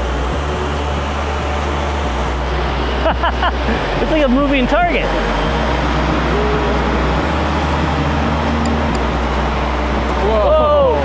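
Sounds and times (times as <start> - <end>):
electric rotors whirring: 0.0 - 11.0.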